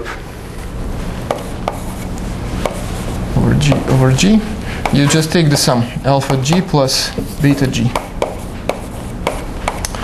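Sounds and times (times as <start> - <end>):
chalk tapping on blackboard: 1.2 - 3.0, 3.6 - 4.0, 4.8 - 5.2, 6.1 - 10.0
chalk scratching on blackboard: 1.3 - 3.2, 7.2 - 9.8.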